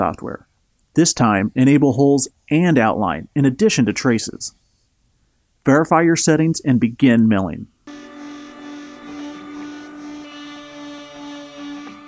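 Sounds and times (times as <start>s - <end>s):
milling machine spindle whine: 7.9s - 12.0s.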